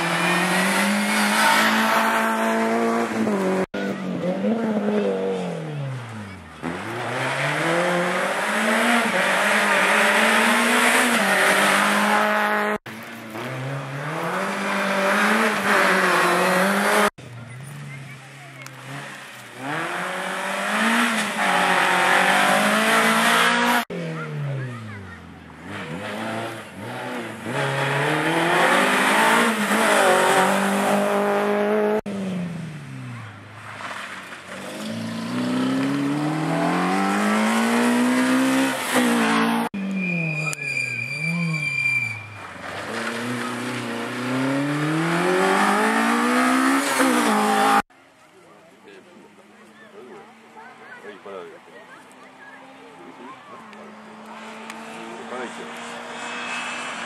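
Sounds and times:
rally car engines revving: 0.0 - 47.9, 49.0 - 57.0
steady high squeal: 39.8 - 42.5.

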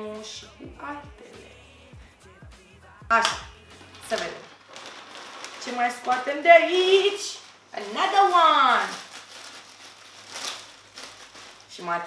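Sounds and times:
plastic bag crinkling: 3.8 - 12.0.

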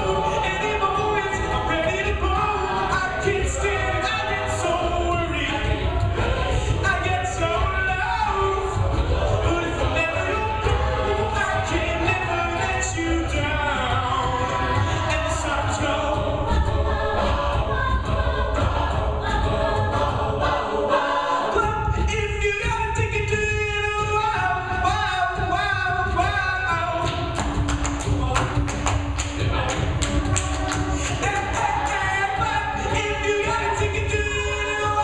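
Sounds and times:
deep vocal bass line: 0.0 - 35.0
rhythmic percussive clicks: 0.0 - 35.0
sung backing harmonies: 0.0 - 35.0.

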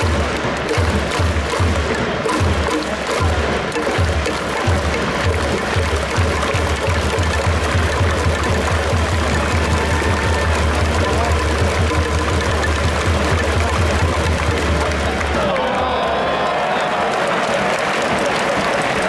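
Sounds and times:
crowd noise: 0.0 - 19.0
stadium music with drum beat: 0.0 - 19.0.

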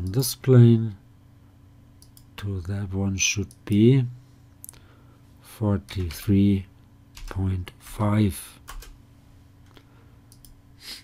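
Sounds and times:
computer mouse clicks: 2.0 - 2.3, 10.3 - 10.6.

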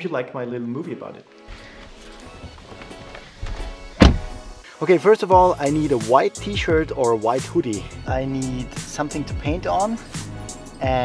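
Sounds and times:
instrumental background music: 0.0 - 11.0
thuds and rustling in car seat: 1.5 - 4.6.

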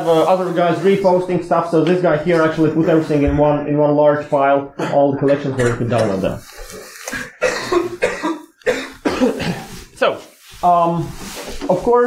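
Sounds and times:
man coughing: 4.8 - 6.2, 7.1 - 9.8.

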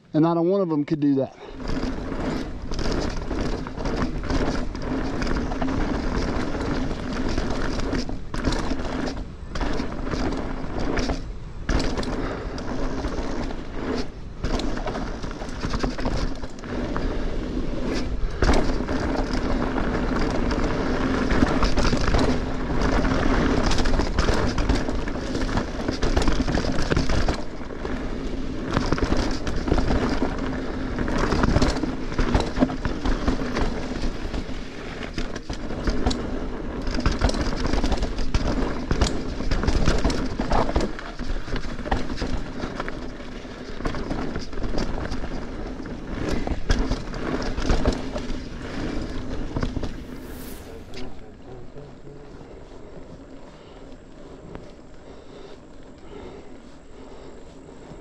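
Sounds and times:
bike tyres on dirt and rock: 0.0 - 58.0
bike rattling over bumps: 0.2 - 58.0
steady low hum: 48.3 - 58.0.

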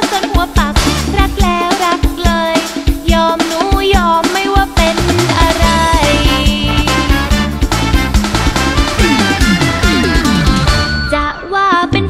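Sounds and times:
upbeat pop band music: 0.0 - 12.0.

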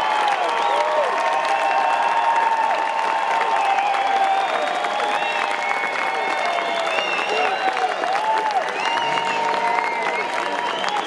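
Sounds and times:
audience clapping: 0.0 - 11.0
crowd cheering: 0.0 - 11.0
whistles gliding up and down: 8.8 - 11.0.

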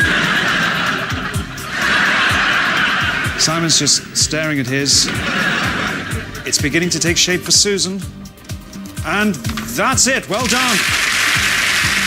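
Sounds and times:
game-show music: 0.0 - 12.0.

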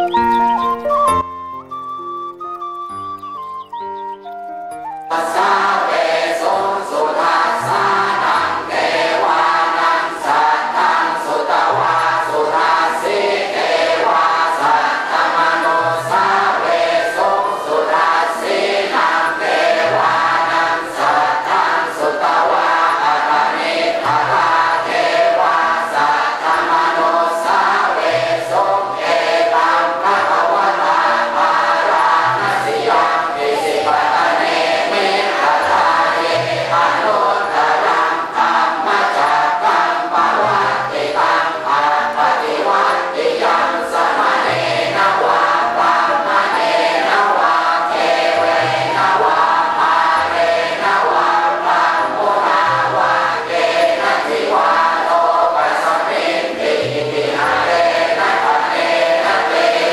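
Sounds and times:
clean musical notes: 0.0 - 59.6
congregation chanting in unison: 5.1 - 59.9.

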